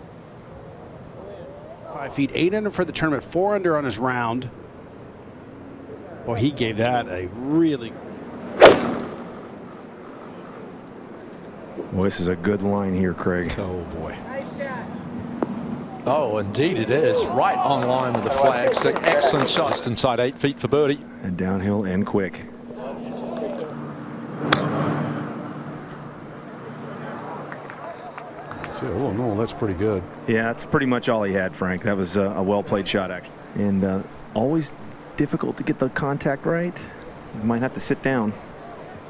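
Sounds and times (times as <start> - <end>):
background murmur: 0.0 - 2.4, 4.5 - 21.2, 22.3 - 24.5, 25.2 - 34.0, 38.1 - 39.0
golf club striking ball: 8.6 - 9.7.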